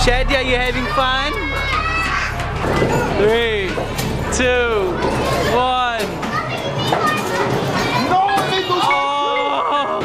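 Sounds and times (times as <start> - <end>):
children playing and calling out: 0.7 - 4.0, 4.8 - 10.0.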